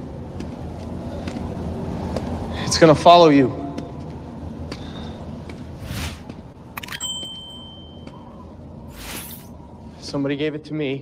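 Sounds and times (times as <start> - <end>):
low background noise: 0.0 - 11.0
high steady ringing tone: 6.8 - 9.5.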